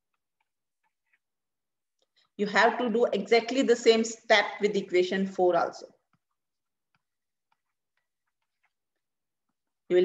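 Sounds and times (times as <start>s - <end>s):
stylus ticking on tablet screen: 0.0s - 2.1s, 6.0s - 9.9s.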